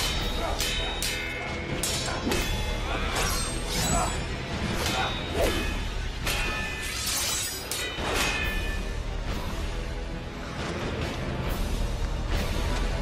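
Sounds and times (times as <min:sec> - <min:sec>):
swords swishing and clashing: 0:00.0 - 0:08.8
film score music: 0:00.0 - 0:13.0.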